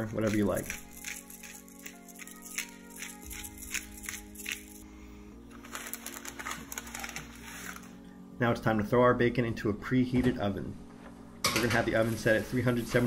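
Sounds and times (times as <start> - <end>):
pepper mill grinding: 0.0 - 4.8, 5.5 - 7.9
background music of held chords: 0.0 - 13.0.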